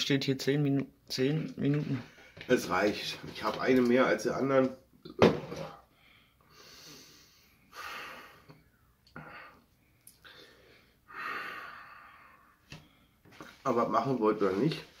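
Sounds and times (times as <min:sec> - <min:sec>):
man breathing heavily: 0:05.8 - 0:13.3.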